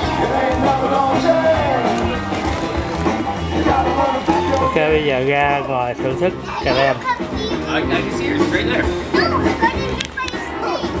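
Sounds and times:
background chatter: 0.0 - 11.0
music: 0.0 - 11.0
children's voices: 5.6 - 8.2, 9.0 - 11.0.

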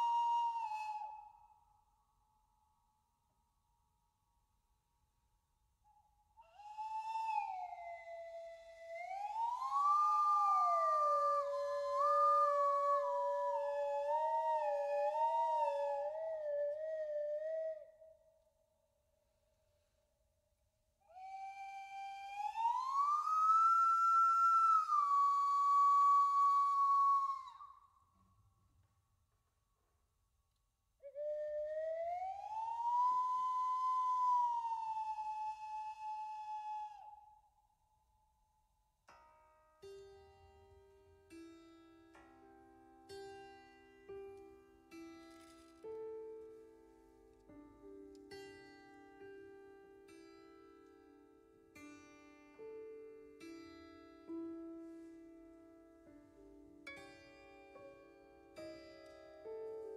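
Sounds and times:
slide whistles: 0.0 - 1.7, 5.9 - 18.2, 21.1 - 28.0, 31.0 - 37.6.

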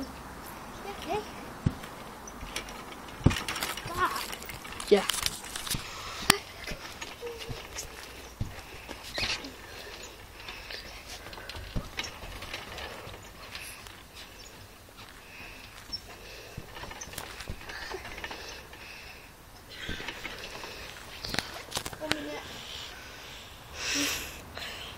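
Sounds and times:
thumps on trampoline mat: 3.2 - 4.0.

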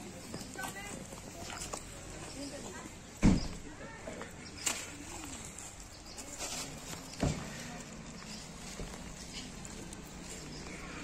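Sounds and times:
people chatting: 0.0 - 10.5
loud dull thump: 3.2 - 3.6.

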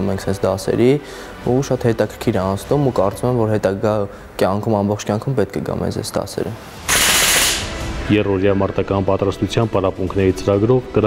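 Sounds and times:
sudden loud burst of noise: 6.8 - 8.0.

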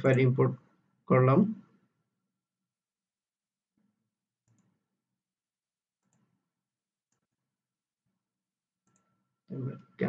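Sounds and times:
computer mouse clicks: 4.4 - 4.8, 8.8 - 9.2.

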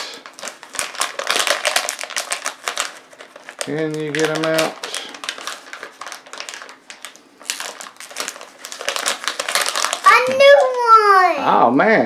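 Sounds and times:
foil bag crinkling: 0.0 - 11.3
child's voice: 10.0 - 11.6.

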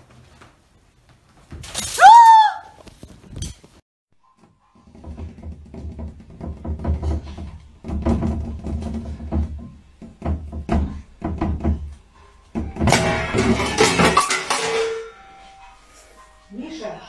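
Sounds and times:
crash of wicker lamp: 1.6 - 2.1.

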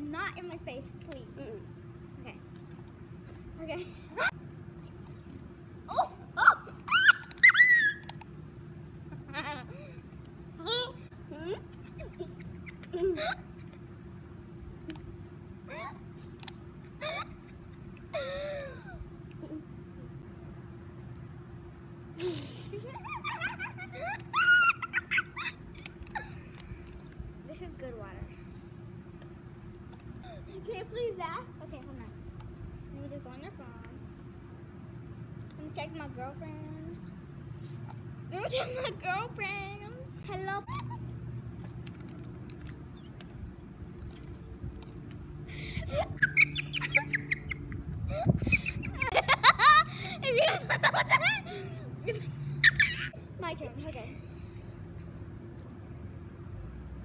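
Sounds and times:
girl squealing: 5.9 - 8.1, 24.3 - 25.6.

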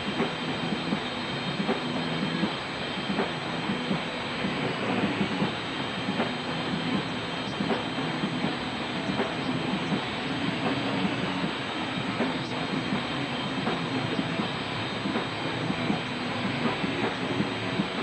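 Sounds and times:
drum hits: 0.0 - 18.0.

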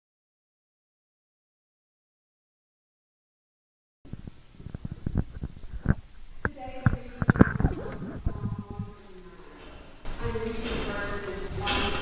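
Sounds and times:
microphone handling knocks: 4.1 - 9.0
faint voice sounds: 6.5 - 9.6.

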